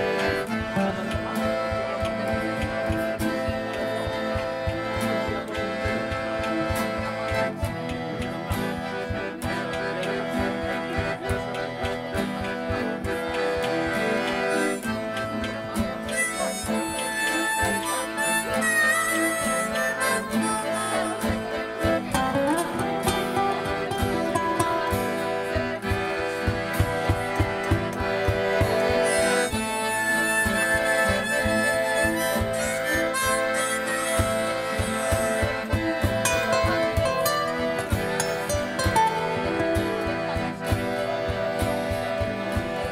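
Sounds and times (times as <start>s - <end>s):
accordion: 0.0s - 42.9s
acoustic guitar: 0.0s - 42.9s
harmonica melody: 0.0s - 42.9s.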